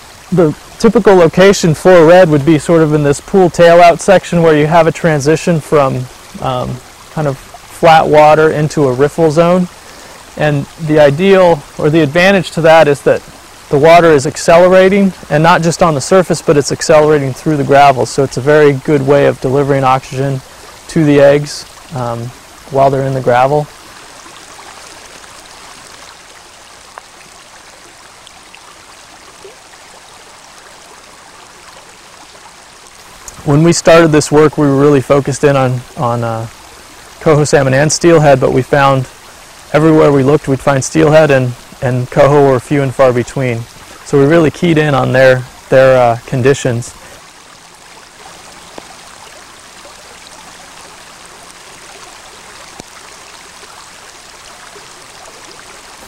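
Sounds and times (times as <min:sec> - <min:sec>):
creek water rushing: 0:00.0 - 0:56.0
faint ticks: 0:26.9 - 0:27.2, 0:48.7 - 0:49.0
small tick: 0:48.7 - 0:48.9.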